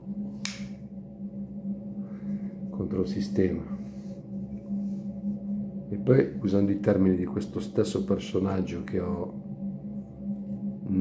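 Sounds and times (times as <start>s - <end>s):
steady low hum: 0.0s - 11.0s
cigarette lighter strike: 0.4s - 0.8s.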